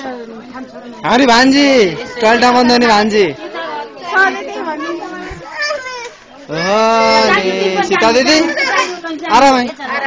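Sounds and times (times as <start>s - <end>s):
scattered talking: 0.0s - 10.0s.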